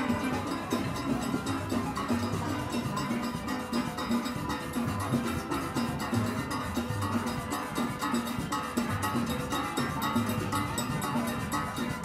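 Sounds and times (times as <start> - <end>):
conga and drum-kit hits: 0.0 - 12.0
cowbells struck with sticks: 0.0 - 12.0
pitched steelband notes: 0.0 - 12.0.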